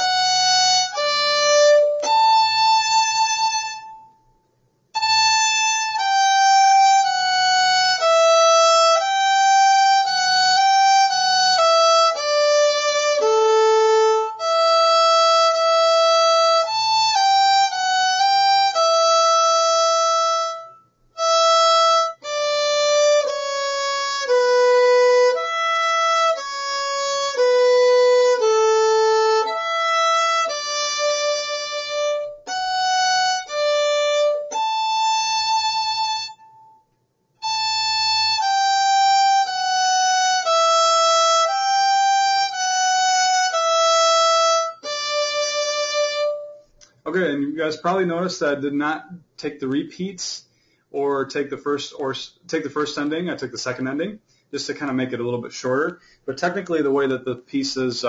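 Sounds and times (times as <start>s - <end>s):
solo violin playing held notes: 0.0s - 4.2s, 5.0s - 36.8s, 37.4s - 46.7s.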